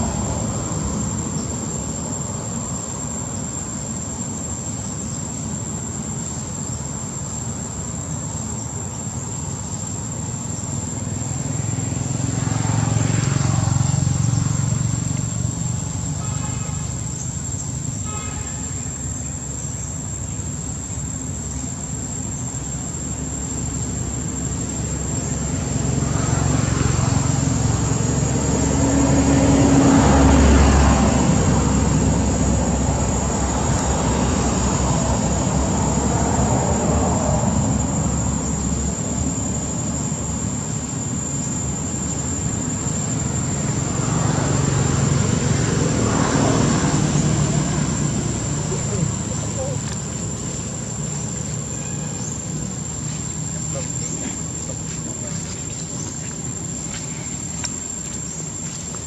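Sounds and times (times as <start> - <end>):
thin steady high whine: 0.0 - 29.2, 30.2 - 59.0
road vehicles passing: 0.0 - 59.0.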